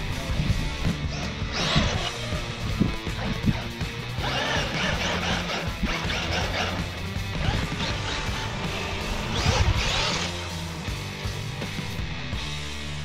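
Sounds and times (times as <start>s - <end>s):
rock music with bass line: 0.0s - 13.0s
loud crashing bursts: 4.2s - 10.6s.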